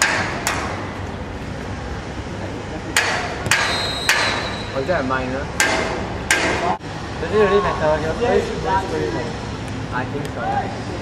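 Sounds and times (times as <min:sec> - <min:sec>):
sharp knocks: 0:00.0 - 0:00.8, 0:03.0 - 0:04.6, 0:05.6 - 0:06.8
low background noise: 0:00.0 - 0:11.0.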